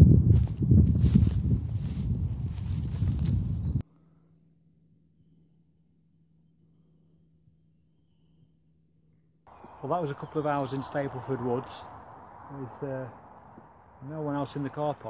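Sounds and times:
wind and handling noise: 0.0 - 3.8
faint high whine: 4.0 - 15.0
insect chirring: 6.4 - 15.0.

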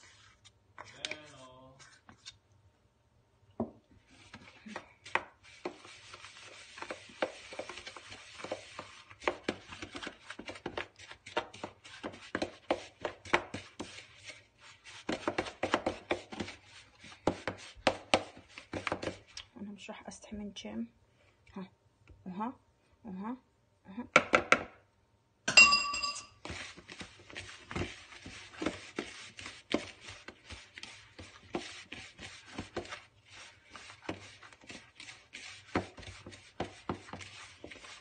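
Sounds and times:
metal spoon scraping plastic bowl: 0.0 - 2.4, 4.0 - 19.4, 26.3 - 38.0.

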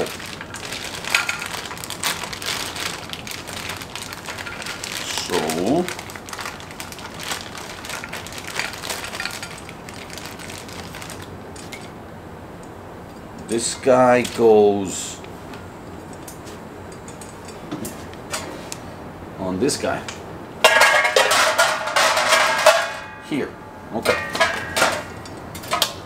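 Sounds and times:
plastic bag crinkling: 0.0 - 11.8.

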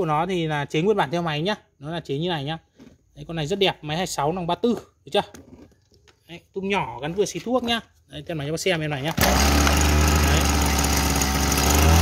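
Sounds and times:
brush-cutter engine running: 9.1 - 12.0.

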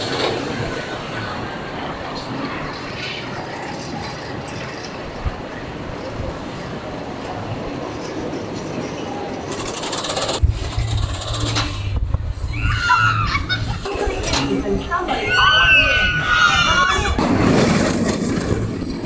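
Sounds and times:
roller coaster lift mechanical noise: 0.0 - 19.0
heavy uneven low rumble: 10.4 - 15.0.

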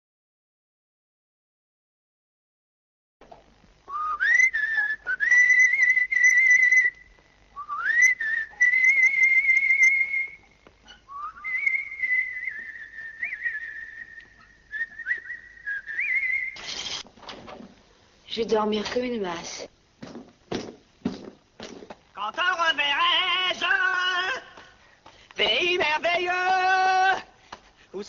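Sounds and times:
person whistling a slow tune: 3.9 - 7.0, 7.6 - 16.6
burst of noise: 16.4 - 17.2.

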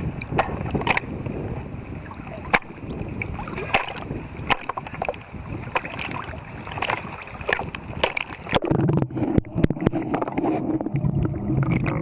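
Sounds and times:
lake water sloshing and lapping: 0.0 - 12.0
low rumbling wash: 0.0 - 12.0
short sharp splashes: 3.4 - 8.7.

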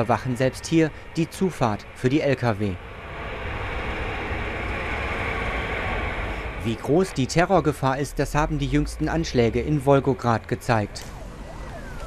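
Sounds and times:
heavy truck driving past: 2.8 - 9.6.

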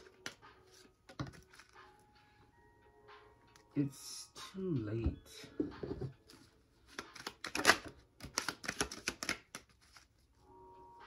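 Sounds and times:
deck of cards being shuffled: 6.3 - 10.3.

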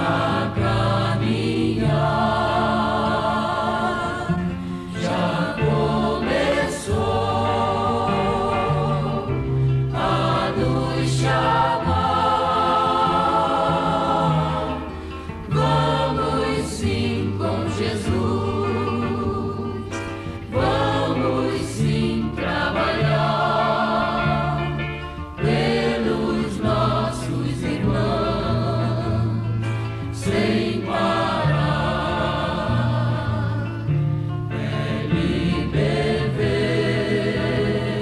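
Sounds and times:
choir singing a hymn: 0.0 - 38.0
held bass notes: 0.0 - 38.0.

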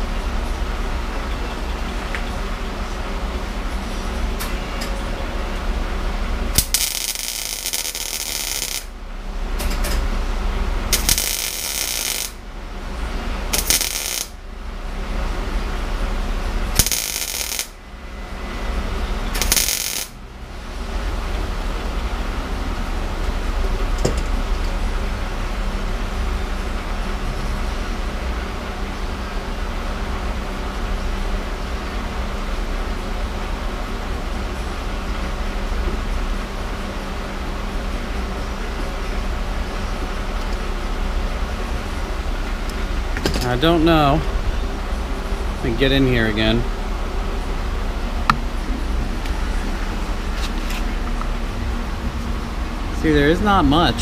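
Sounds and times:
steady mechanical hum: 0.0 - 54.0
welding arc crackling: 6.5 - 9.0, 10.8 - 12.5, 13.1 - 14.4, 16.5 - 17.8, 19.3 - 20.2.

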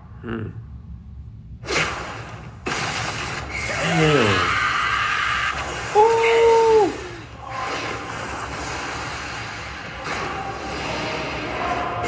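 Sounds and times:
rushing hissing battle effects: 1.6 - 12.0.

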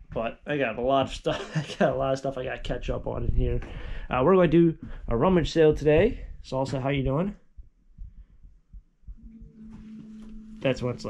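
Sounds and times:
faint low thumps: 1.9 - 11.0
steady low hum: 4.8 - 11.0.

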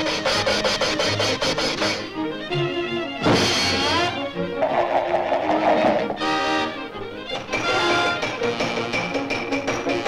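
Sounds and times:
rapid rhythmic scraping: 4.5 - 6.3
steady pitched tone: 4.6 - 6.3.

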